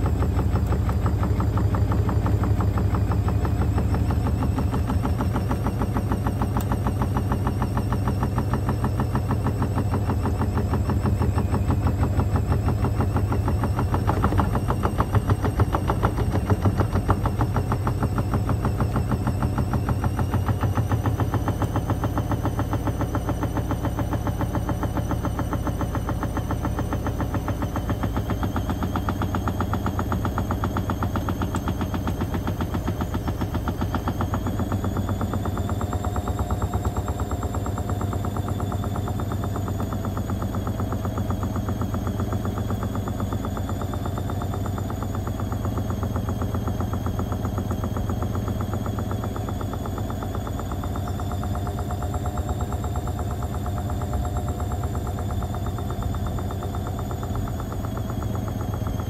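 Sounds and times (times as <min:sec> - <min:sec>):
washing machine motor whine: 0:00.0 - 0:59.0.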